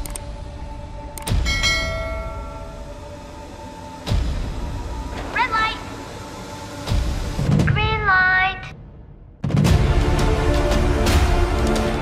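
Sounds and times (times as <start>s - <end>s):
bell-like ding: 1.4s - 2.8s.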